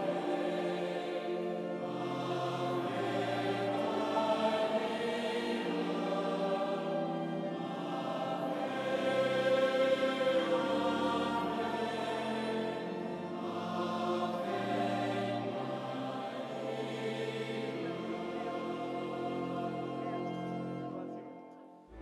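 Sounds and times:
choir singing a hymn: 0.0 - 22.0.

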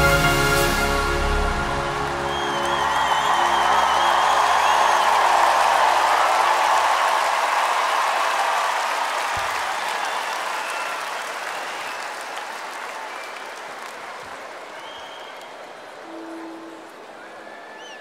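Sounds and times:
music held notes: 0.0 - 5.3
crowd applauding and cheering: 0.0 - 18.0.

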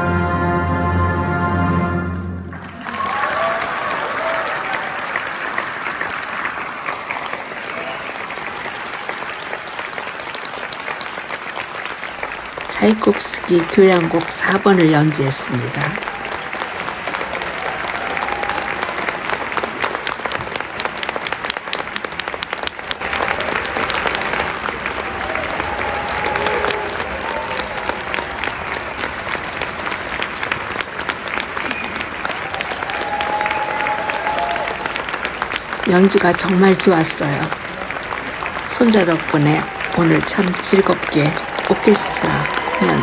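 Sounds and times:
audience applauding: 2.1 - 43.0.

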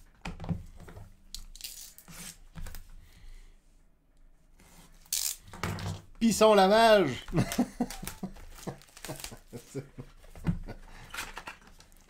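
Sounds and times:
plastic wrap rustling: 7.4 - 10.2
plastic wrap ripping: 7.8 - 9.6.

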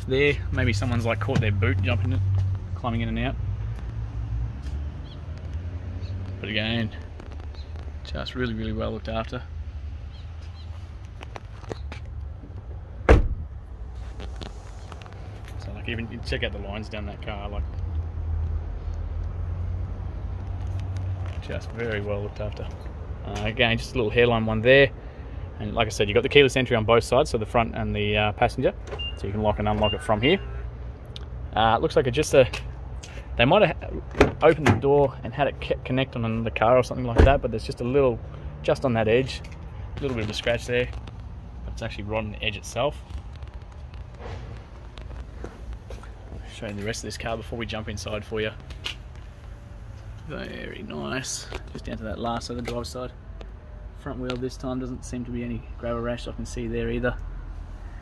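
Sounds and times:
distant traffic rumble: 0.0 - 58.0
soft footsteps: 42.8 - 47.4.

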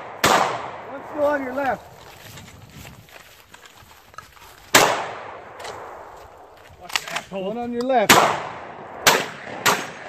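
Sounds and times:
shotgun shots: 0.0 - 1.2, 4.7 - 6.1, 8.0 - 10.0.

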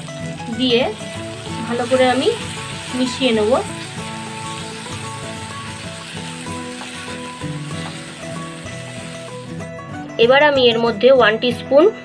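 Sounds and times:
vegetables sizzling in hot oil: 0.0 - 9.8
background music: 0.0 - 12.0
spatula stirring in a pan: 1.0 - 9.6.

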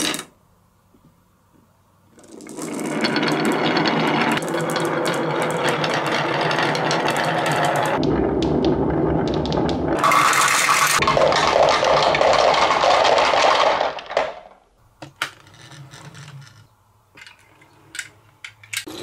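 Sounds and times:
marbles rolling on wood: 2.1 - 18.1.

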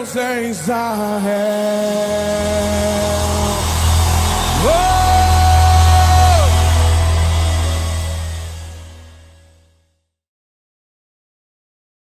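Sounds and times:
worship song held notes: 0.0 - 9.7
sustained low bass chord: 2.2 - 10.0.

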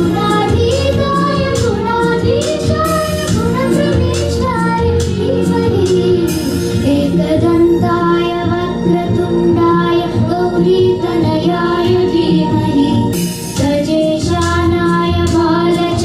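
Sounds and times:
percussion strikes: 0.0 - 7.2, 13.1 - 16.0
girls singing into microphones: 0.0 - 16.0
instrumental accompaniment: 0.0 - 16.0.

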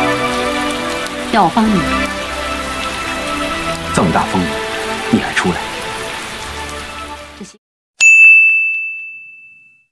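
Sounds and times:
rain: 0.0 - 7.6
sharp bell-like ding: 8.0 - 9.9.

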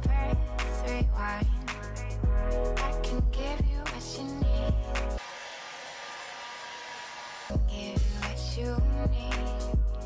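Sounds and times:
music: 0.0 - 5.3, 7.5 - 10.0
hair dryer blowing: 5.2 - 7.6.

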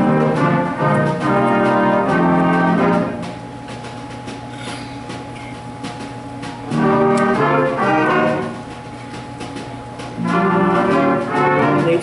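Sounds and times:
jazz band with brass and saxophones: 0.0 - 12.0.

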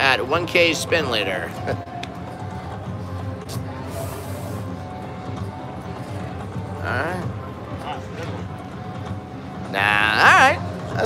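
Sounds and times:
low casino hum: 0.0 - 11.0.

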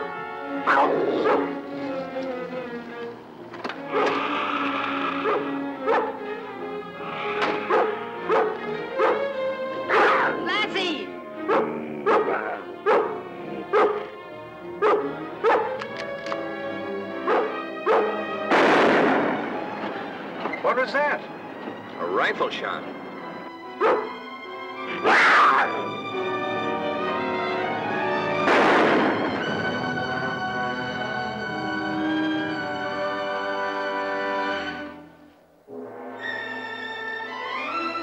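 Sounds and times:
dog barking: 0.7 - 1.5, 3.9 - 4.2, 5.2 - 6.2, 7.6 - 9.3, 9.9 - 10.4, 11.4 - 14.1, 14.8 - 15.8, 17.2 - 18.2, 23.8 - 24.2.

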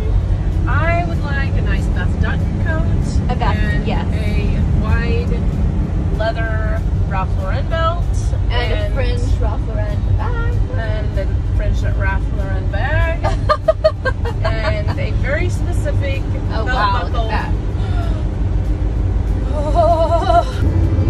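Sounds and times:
woman talking: 0.0 - 5.4, 6.2 - 13.7, 14.3 - 18.3
road and engine rumble in cab: 0.0 - 21.0.

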